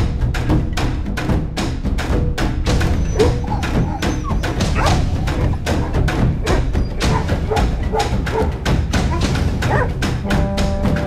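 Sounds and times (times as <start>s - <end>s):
music with drum-like beat: 0.0s - 11.0s
dogs whimpering and yelping: 2.7s - 10.0s.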